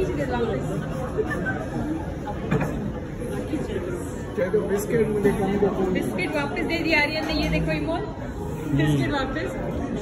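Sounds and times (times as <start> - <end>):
restaurant background chatter: 0.0 - 10.0.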